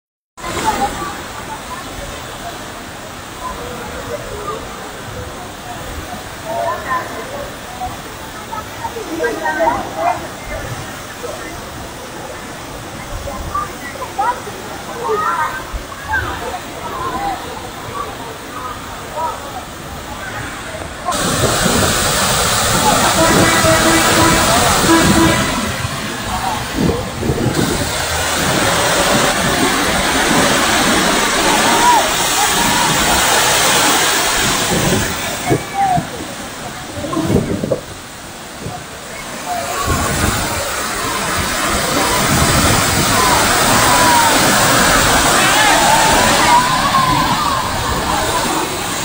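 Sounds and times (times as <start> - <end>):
floodwater rushing down waterfall: 0.4 - 49.0.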